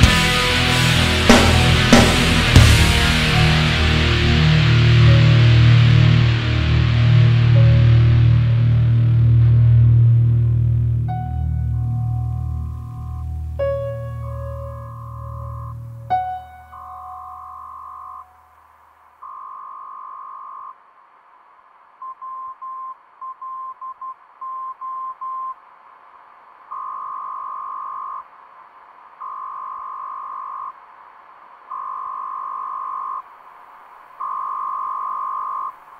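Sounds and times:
long electronic beeps: 14.8 - 18.5, 19.2 - 20.8, 26.7 - 28.4, 29.2 - 30.9, 31.7 - 33.4, 34.2 - 35.9.

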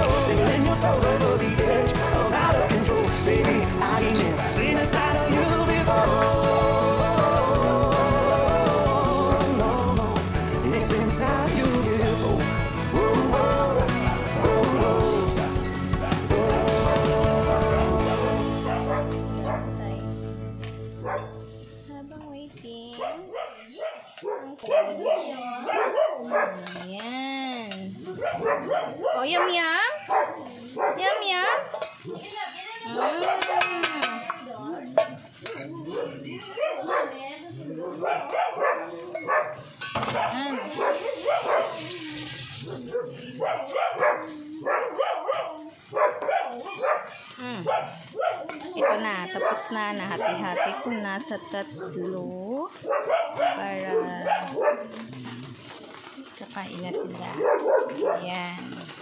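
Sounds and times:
song chord: 16.4 - 22.0
small dogs barking and whining: 23.0 - 26.8, 28.0 - 33.8, 34.9 - 58.9
small dogs yipping and whining: 28.0 - 31.3.

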